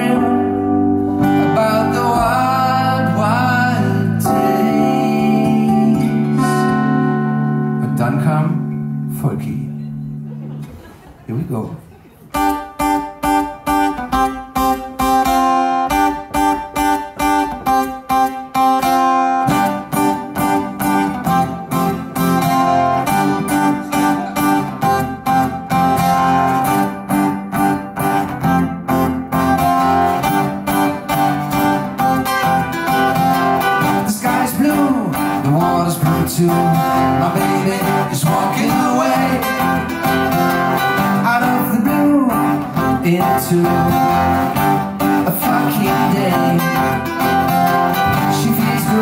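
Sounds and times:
acoustic guitar picked chords: 0:00.0 - 0:11.0, 0:12.3 - 0:49.0.

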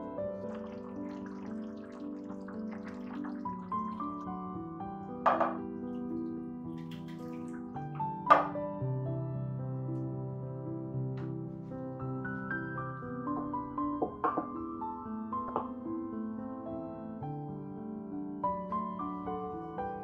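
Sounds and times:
soft piano music: 0:00.0 - 0:20.0
stew splashing into baking dish: 0:00.4 - 0:04.4, 0:05.4 - 0:07.9.

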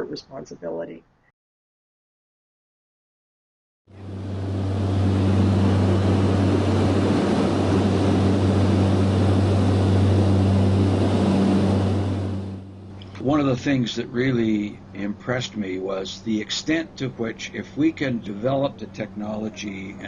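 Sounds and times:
small aircraft engine drone: 0:03.9 - 0:20.0.

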